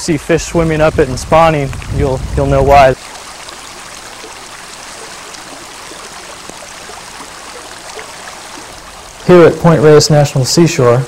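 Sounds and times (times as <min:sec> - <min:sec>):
creek water flowing: 0:00.0 - 0:11.0.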